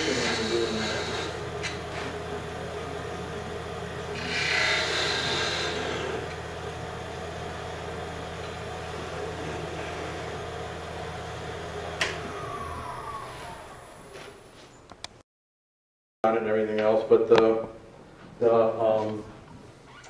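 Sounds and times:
lathe motor hum: 0:00.0 - 0:14.5
lathe tool scraping wood: 0:00.0 - 0:14.5
lathe winding down whine: 0:00.0 - 0:14.5.

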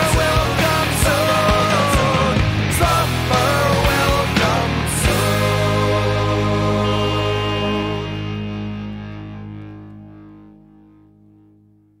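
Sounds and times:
bass guitar chord: 0:00.0 - 0:12.0
distorted electric guitar chord: 0:00.0 - 0:12.0.

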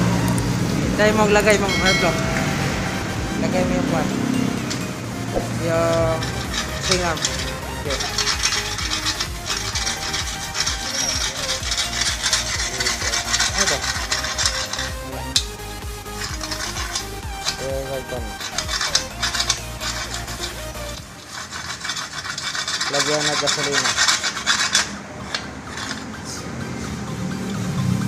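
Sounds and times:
metal rasping against metal tube: 0:01.5 - 0:26.5.

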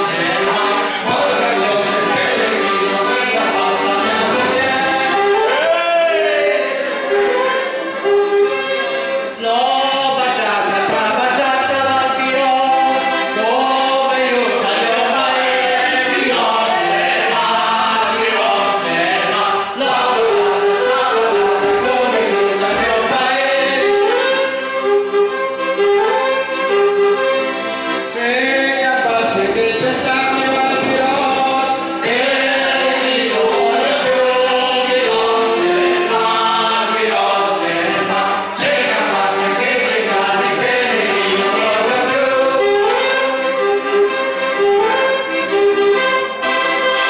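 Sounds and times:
group singing folk song in chorus: 0:00.0 - 0:08.1, 0:09.4 - 0:24.6, 0:27.5 - 0:47.0
piano-accordion chords: 0:00.0 - 0:47.0.

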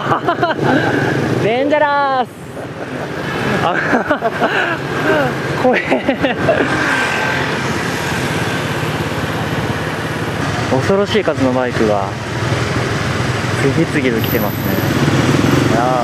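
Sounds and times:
road noise rush: 0:00.0 - 0:16.0
motorbike engine hum: 0:02.4 - 0:16.0
voices: 0:13.5 - 0:16.0.

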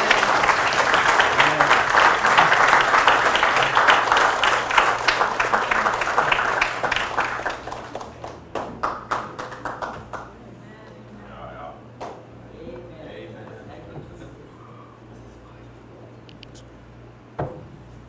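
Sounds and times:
congregation applauding: 0:00.0 - 0:10.4.

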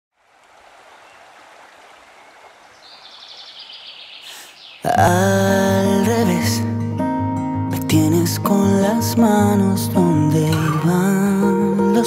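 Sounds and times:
water rushing: 0:00.1 - 0:05.6.

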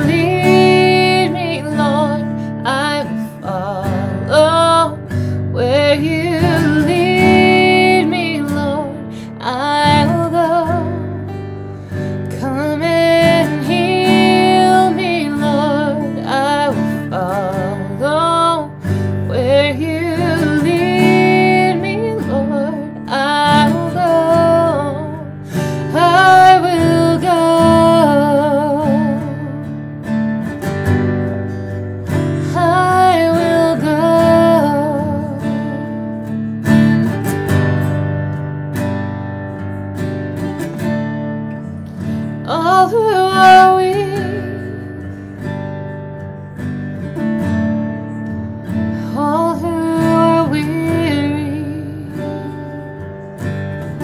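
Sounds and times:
woman singing: 0:00.0 - 0:37.2, 0:39.6 - 0:54.0
acoustic guitar strumming: 0:00.0 - 0:54.0.

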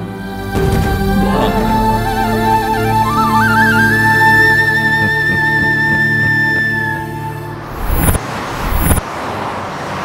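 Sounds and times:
car traffic noise: 0:00.0 - 0:10.0
vehicles passing: 0:00.5 - 0:10.0.

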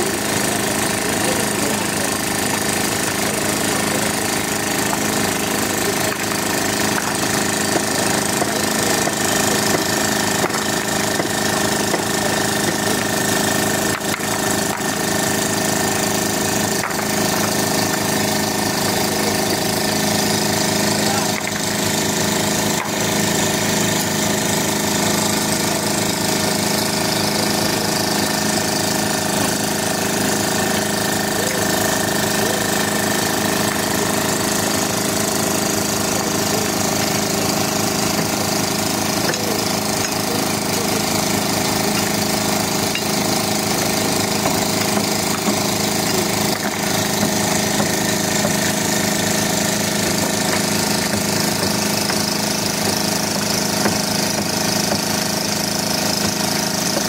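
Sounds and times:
engine running steadily: 0:00.0 - 0:57.0.

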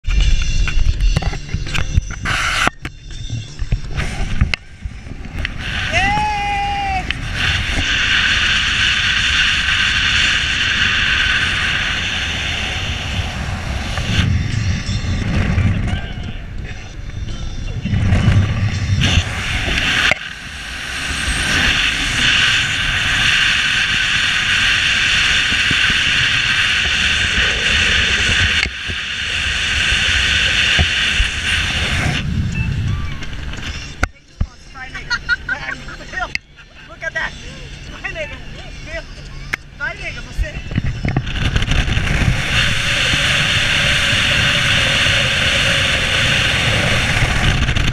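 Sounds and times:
wind rushing over microphone: 0:00.0 - 0:34.8, 0:37.8 - 0:47.9
car road noise at speed: 0:00.0 - 0:47.9.

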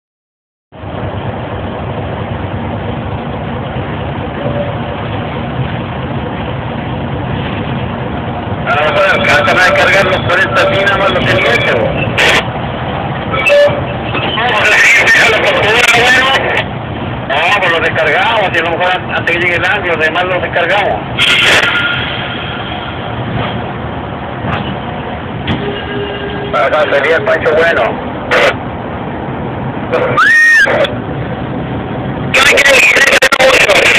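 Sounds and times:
large vehicle engine running: 0:00.7 - 0:30.2, 0:30.8 - 0:33.9.

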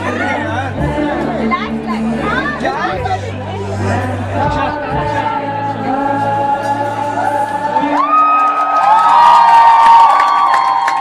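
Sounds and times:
audience cheering: 0:07.6 - 0:11.0.

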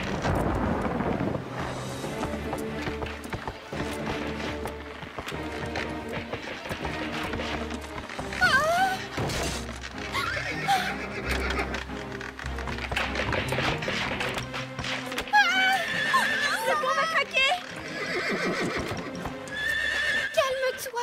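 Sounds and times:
background music: 0:00.0 - 0:21.0
cartoon horses whinnying: 0:08.4 - 0:12.2, 0:15.3 - 0:20.8.

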